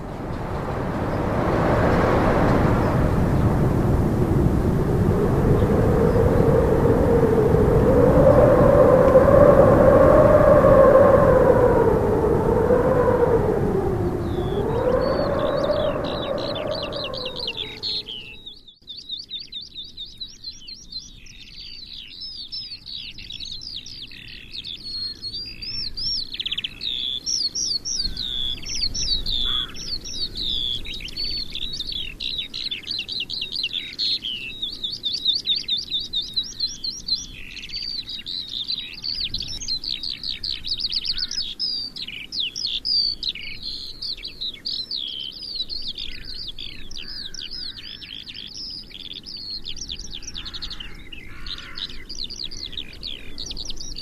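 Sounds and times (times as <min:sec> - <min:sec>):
songbirds chirping and trilling: 0:00.0 - 0:54.0.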